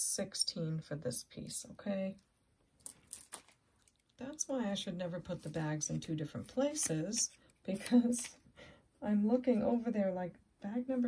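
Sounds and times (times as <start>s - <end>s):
objects handled on a tabletop: 2.7s - 4.2s, 5.2s - 8.5s.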